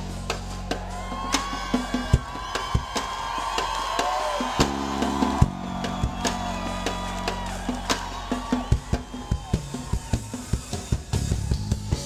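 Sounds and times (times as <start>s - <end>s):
reggae band playing: 0.0s - 12.0s.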